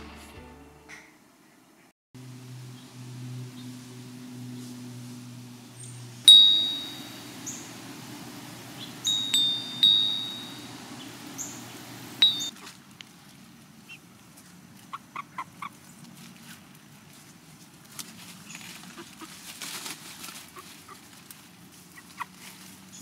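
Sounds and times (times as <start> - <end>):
metal wind chime ringing: 6.3 - 12.5.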